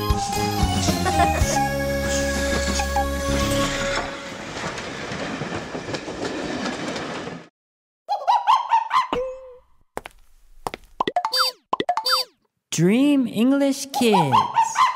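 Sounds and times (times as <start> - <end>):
cartoon boing sounds: 9.1 - 9.7.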